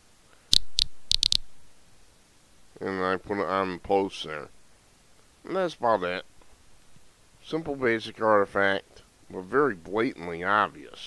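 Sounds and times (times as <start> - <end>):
computer mouse clicks: 0.5 - 1.5
person speaking: 2.8 - 4.5, 5.4 - 6.3, 7.4 - 11.0.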